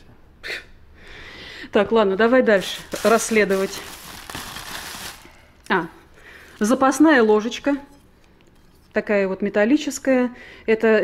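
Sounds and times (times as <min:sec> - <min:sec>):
plastic bag rustling and crinkling: 0:02.2 - 0:07.6.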